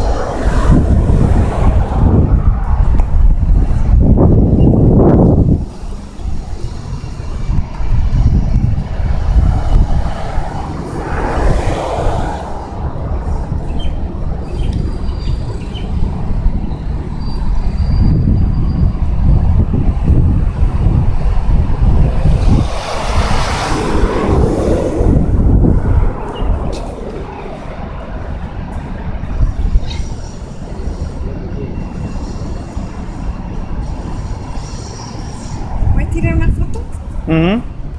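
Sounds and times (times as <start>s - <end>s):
rushing noise: 0.0s - 37.9s
wind buffeting microphone: 0.0s - 37.9s.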